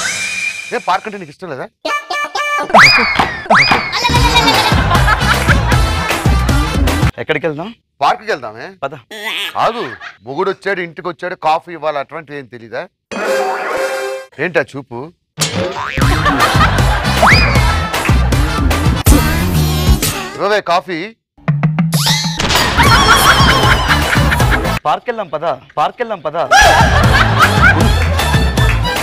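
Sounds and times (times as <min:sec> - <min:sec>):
loud music: 0:04.1 - 0:07.1, 0:16.0 - 0:20.4, 0:22.8 - 0:24.8, 0:26.6 - 0:29.0.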